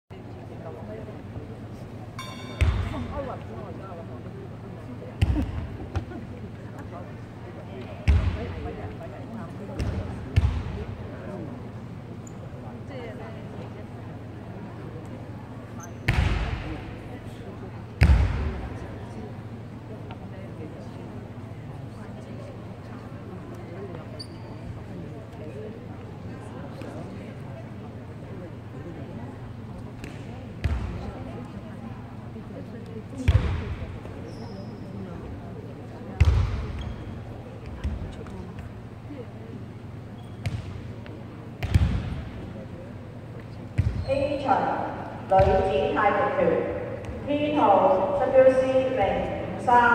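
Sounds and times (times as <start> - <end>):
echoing chatter of voices: 0.1 - 49.9
heavy thumps echoing in hall: 2.4 - 3.5, 5.1 - 6.2, 7.8 - 11.2, 16.0 - 17.2, 17.9 - 18.9, 40.4 - 42.6, 43.7 - 49.9.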